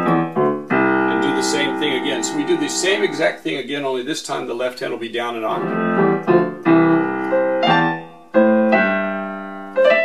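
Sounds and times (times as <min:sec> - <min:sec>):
low piano notes on keyboard: 0:00.0 - 0:03.7, 0:05.4 - 0:10.0.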